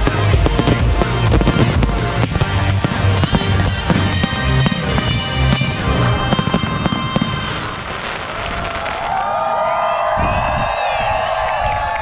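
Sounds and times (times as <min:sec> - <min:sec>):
fireworks crackling and banging: 0:00.0 - 0:09.4
crowd cheering: 0:03.0 - 0:12.0.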